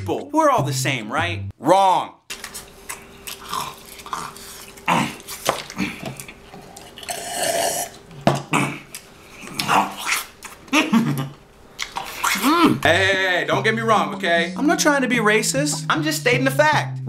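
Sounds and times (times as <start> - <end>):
burps and mouth smacks: 2.9 - 12.9.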